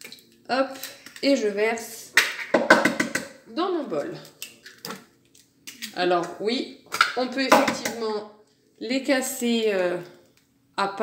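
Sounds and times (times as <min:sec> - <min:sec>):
woman speaking: 0:00.5 - 0:02.2, 0:03.5 - 0:04.4, 0:05.8 - 0:10.2, 0:10.8 - 0:11.0.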